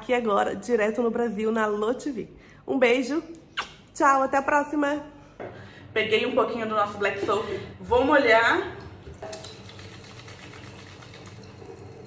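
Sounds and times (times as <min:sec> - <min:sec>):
tap water running into sink: 0:08.8 - 0:12.0
wet hands working soap: 0:09.2 - 0:11.8.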